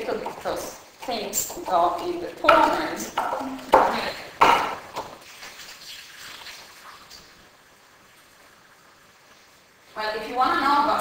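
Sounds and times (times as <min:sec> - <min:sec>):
pestle knocking in wooden mortar: 0:00.0 - 0:05.2.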